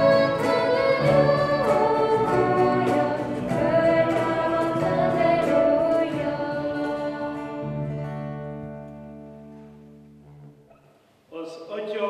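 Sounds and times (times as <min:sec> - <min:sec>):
women singing a hymn: 0:00.0 - 0:08.4
strummed acoustic guitar: 0:00.0 - 0:10.6.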